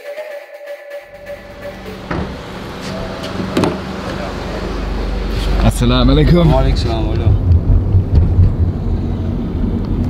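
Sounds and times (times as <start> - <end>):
car engine idling: 1.1 - 10.0.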